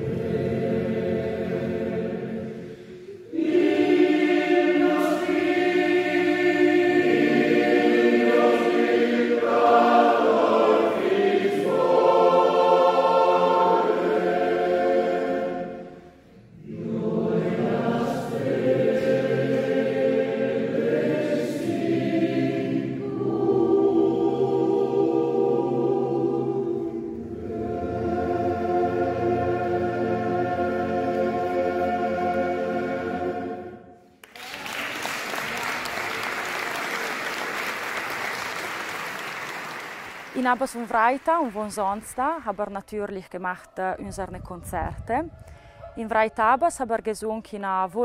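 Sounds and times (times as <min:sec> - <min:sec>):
choir singing sustained chords: 0:00.0 - 0:34.2.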